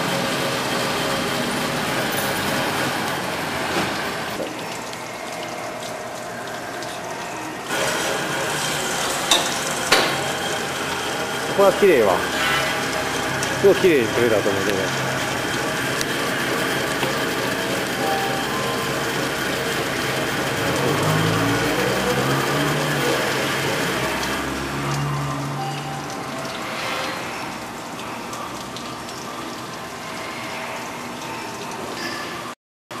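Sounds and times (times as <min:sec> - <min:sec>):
fish filleting machine running: 0:00.0 - 0:33.0.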